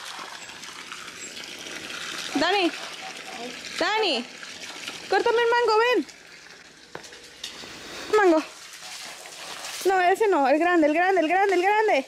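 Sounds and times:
background hiss: 6.9s - 9.9s.

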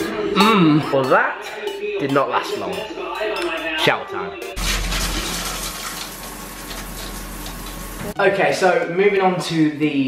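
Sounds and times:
shower spraying water: 4.6s - 8.2s.

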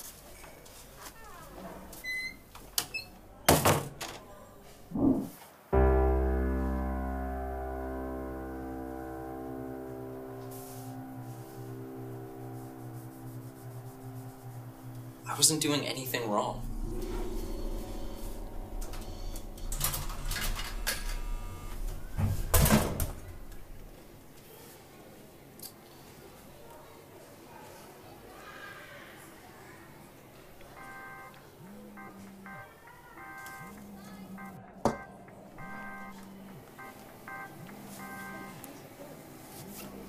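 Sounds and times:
steady low hum: 4.9s - 24.4s
door closing thud: 19.6s - 24.0s.

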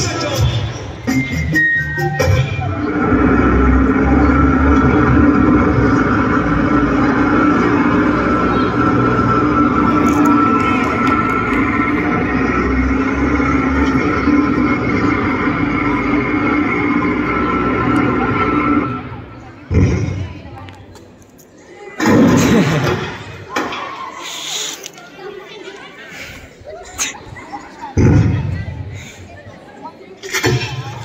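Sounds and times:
droning backing track over loudspeaker: 0.0s - 20.6s
low rumble: 2.7s - 20.2s.

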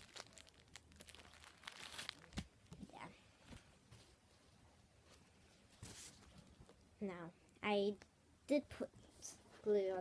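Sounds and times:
tissue paper crinkling: 0.0s - 2.7s.

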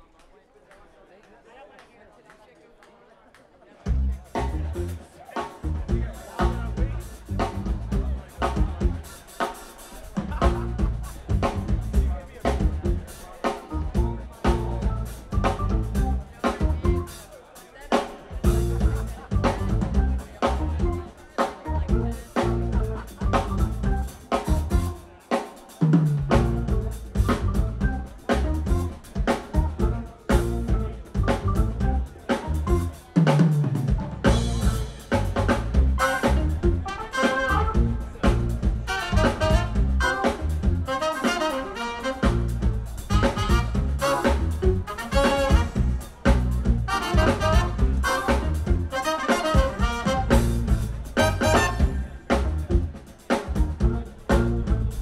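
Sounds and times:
funk band playing: 3.8s - 55.0s
trumpet and saxophone horn line: 34.2s - 52.6s.

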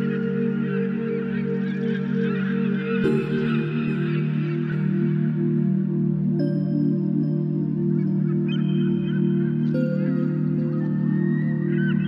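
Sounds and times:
ambient music chords: 0.0s - 12.0s.

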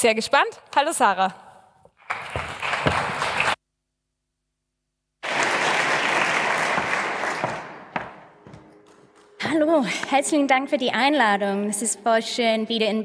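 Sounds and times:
audience applause: 2.0s - 3.6s, 5.2s - 8.3s.

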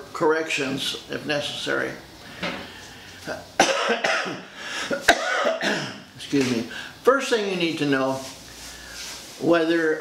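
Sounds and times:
man coughing: 3.6s - 6.1s.

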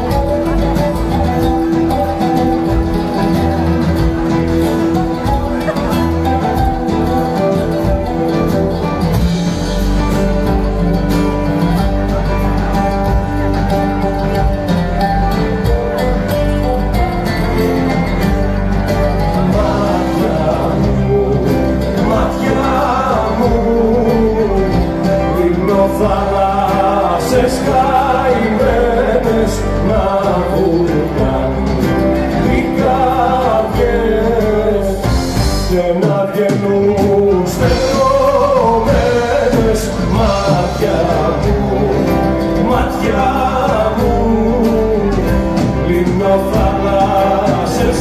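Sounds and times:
band accompaniment with bass: 0.0s - 48.0s
oud plucked melody: 0.0s - 48.0s.

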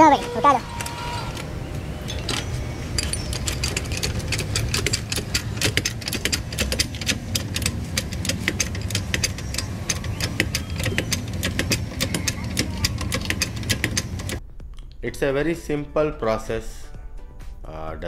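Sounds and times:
floor jack metal clicking: 0.0s - 14.4s
low engine rumble: 0.0s - 16.1s.

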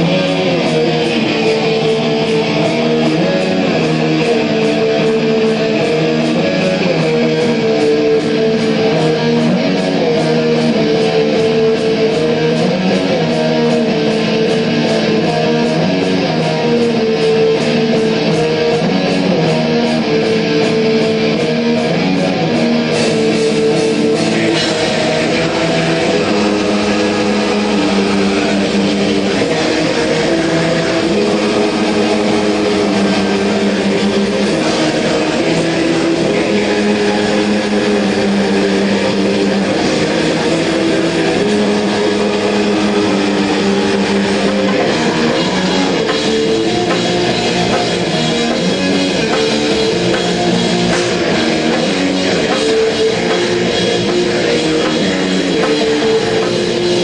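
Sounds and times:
metal band playing heavy chords: 0.0s - 57.0s.

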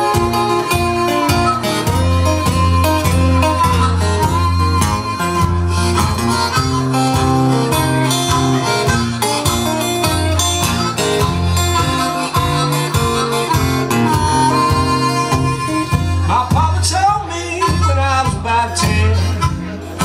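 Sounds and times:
harmonica solo: 0.0s - 20.0s
strummed acoustic guitar: 0.0s - 20.0s.

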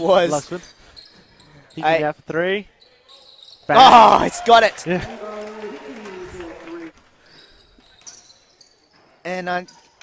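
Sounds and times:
sneakers squeaking on hardwood: 0.8s - 1.9s, 2.8s - 3.7s, 7.4s - 10.0s.

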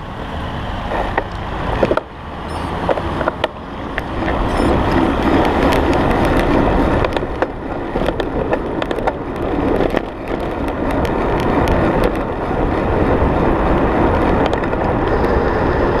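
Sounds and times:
tyres rumbling on road: 0.0s - 16.0s
wind rushing over microphone: 0.0s - 16.0s.

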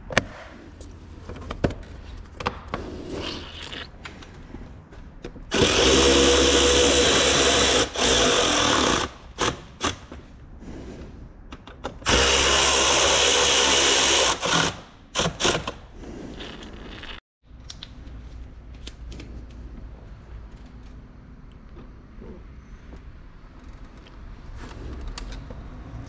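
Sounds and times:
power driver running in bursts: 12.1s - 15.8s.

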